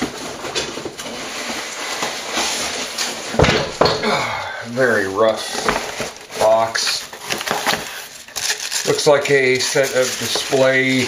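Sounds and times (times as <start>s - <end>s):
cardboard box rustling: 4.7s - 11.0s.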